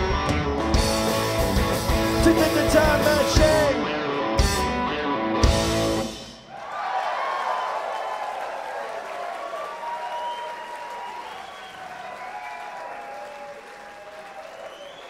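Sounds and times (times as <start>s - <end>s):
audience applauding and cheering: 6.5s - 15.0s.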